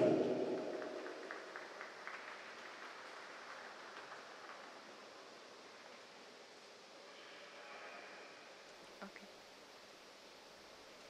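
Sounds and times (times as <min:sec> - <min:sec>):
ice rink hall background noise: 0:00.0 - 0:09.2.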